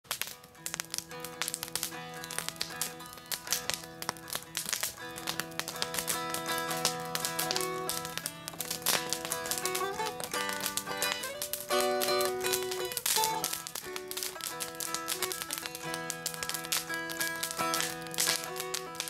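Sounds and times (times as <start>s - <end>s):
campfire crackling: 0.0s - 19.0s
mountain dulcimer melody over drone: 0.7s - 19.0s.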